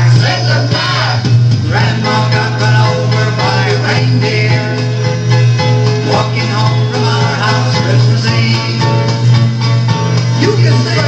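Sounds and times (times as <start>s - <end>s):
song with singing and guitar: 0.0s - 11.0s.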